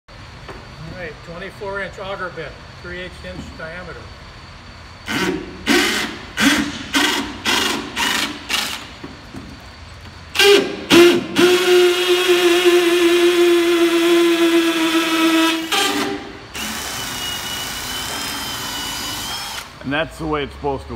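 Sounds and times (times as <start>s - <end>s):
cordless drill boring: 5.1s - 8.9s, 10.4s - 19.8s.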